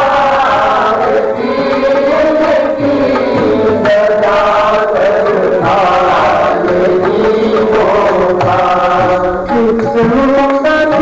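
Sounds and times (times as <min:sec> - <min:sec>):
musical accompaniment: 0:00.0 - 0:11.0
voices chanting a devotional hymn: 0:00.0 - 0:11.0.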